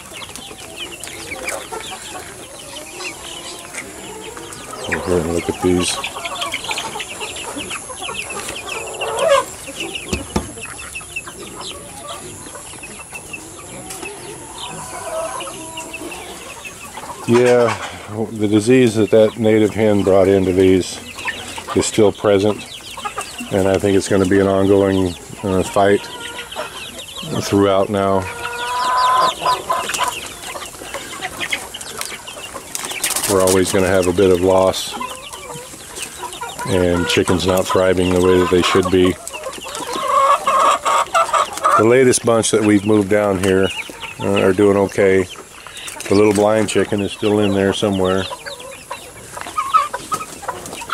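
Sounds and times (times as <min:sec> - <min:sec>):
chicks peeping: 0:00.0 - 0:50.9
hens clucking: 0:00.0 - 0:50.9.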